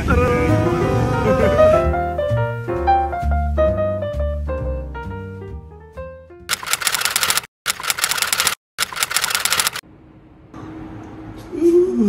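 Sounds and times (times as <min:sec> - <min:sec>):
jazzy piano tune: 0:00.0 - 0:06.5
typewriter key clicks: 0:06.5 - 0:09.8.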